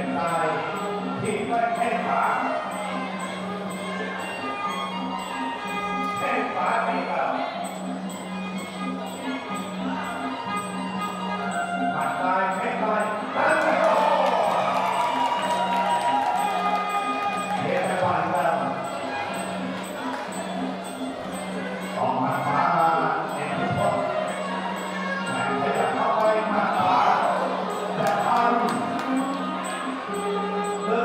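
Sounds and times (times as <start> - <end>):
crowd noise: 0.0 - 31.0
wind instrument melody: 0.0 - 31.0
reedy oboe melody: 8.2 - 12.6
crowd shouting: 13.3 - 18.5, 23.7 - 30.2.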